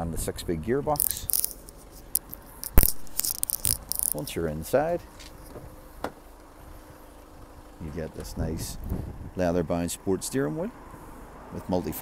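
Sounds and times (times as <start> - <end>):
light clicks and scuffs: 1.0 - 4.3, 5.0 - 6.5.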